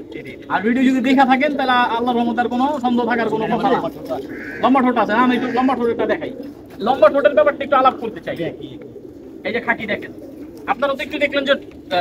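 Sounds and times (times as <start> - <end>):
man speaking: 0.0 - 10.1, 10.7 - 12.0
pigeons cooing: 0.0 - 12.0.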